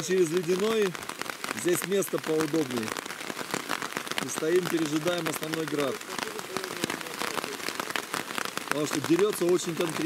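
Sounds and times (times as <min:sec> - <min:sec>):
hail and rain hitting a tarp: 0:00.0 - 0:10.0.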